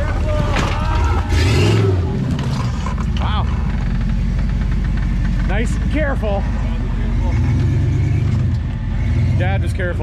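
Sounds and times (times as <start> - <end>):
buggy engine revving: 0.0 - 10.0.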